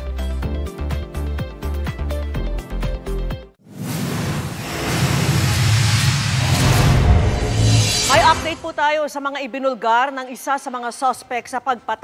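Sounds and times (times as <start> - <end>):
rushing whoosh: 3.8 - 8.8
low rumble: 4.0 - 8.8.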